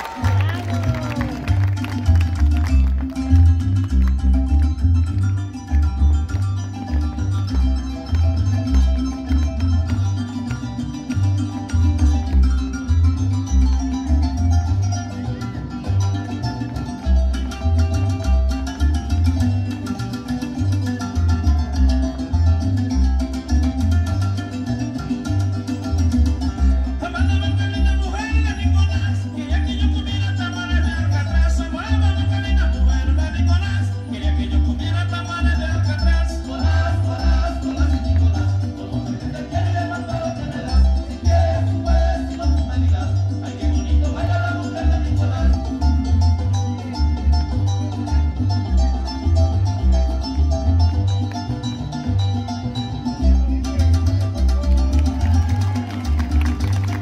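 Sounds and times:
folk music over loudspeakers: 0:00.0 - 0:57.0.

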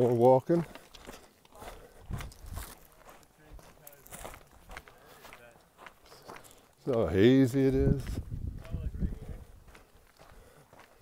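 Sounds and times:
footsteps on rocky dirt trail: 0:00.0 - 0:11.0.

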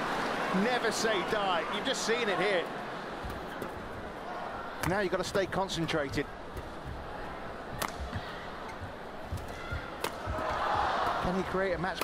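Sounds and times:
arena crowd noise: 0:00.0 - 0:12.0
racket hitting shuttlecock: 0:07.7 - 0:08.4, 0:09.3 - 0:11.2.

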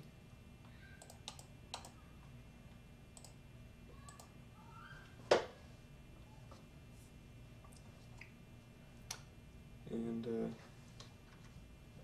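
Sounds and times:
low room hum: 0:00.0 - 0:12.0
computer mouse clicks: 0:00.9 - 0:02.0, 0:03.1 - 0:03.4.

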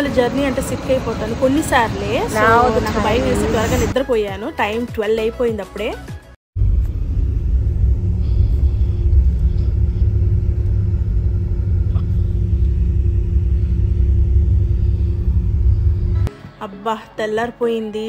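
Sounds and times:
bus engine and road rumble: 0:00.0 - 0:04.0, 0:06.6 - 0:16.3
faint drone: 0:06.6 - 0:16.6.

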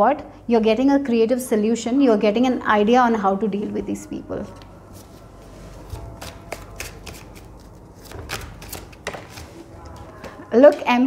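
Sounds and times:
cards being shuffled: 0:05.7 - 0:10.4.

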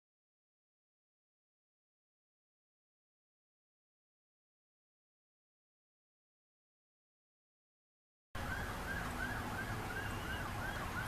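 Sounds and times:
distant wailing siren: 0:08.4 - 0:11.0
low outdoor rumble: 0:08.4 - 0:11.0.

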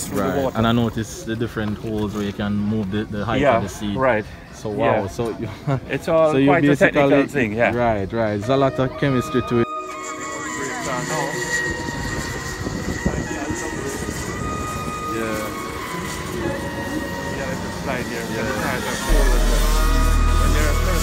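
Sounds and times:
kart engines whining: 0:08.7 - 0:21.0
heavy bass music: 0:19.0 - 0:21.0.

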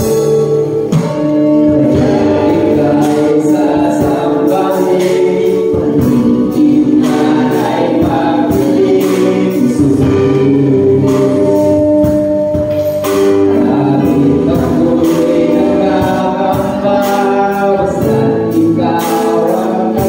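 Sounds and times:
drum beat: 0:00.0 - 0:17.2
worship band playing: 0:00.0 - 0:20.0
group of young singers singing: 0:01.0 - 0:12.4, 0:13.1 - 0:20.0.

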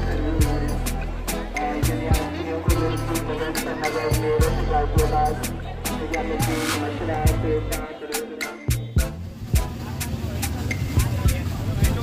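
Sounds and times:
music beat: 0:00.0 - 0:12.0
traffic engines rumbling: 0:00.0 - 0:12.0.

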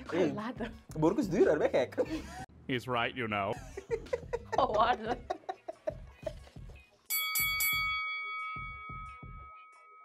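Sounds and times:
music with thumping beat: 0:03.6 - 0:08.0
bright chime ringing: 0:07.1 - 0:10.0.

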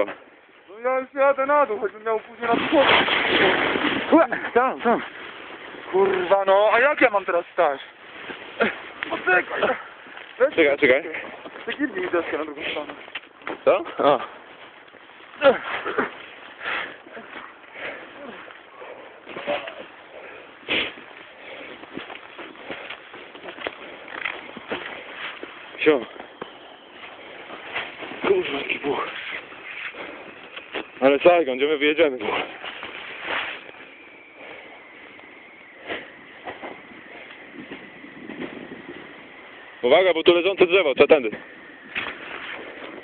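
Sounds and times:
snowboard scraping through powder snow: 0:32.1 - 0:34.0.

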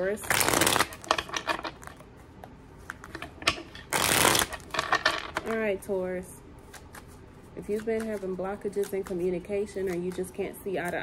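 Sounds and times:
cards being shuffled: 0:00.2 - 0:02.0, 0:02.8 - 0:05.4, 0:06.6 - 0:11.0.

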